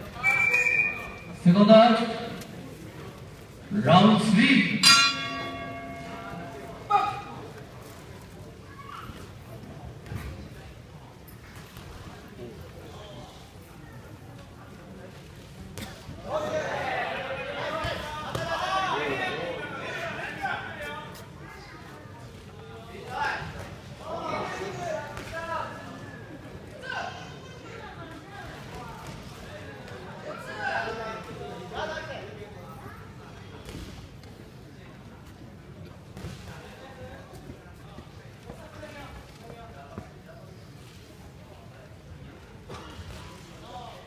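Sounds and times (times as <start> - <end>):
crowd noise: 0.0 - 44.0
boxing ring bell ringing: 4.8 - 7.4.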